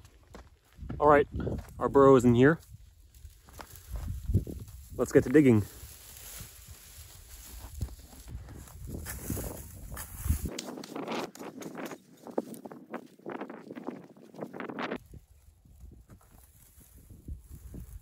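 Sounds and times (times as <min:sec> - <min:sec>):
crumbling dirt: 0:00.0 - 0:15.0
hand pick chopping clay soil: 0:09.9 - 0:12.0.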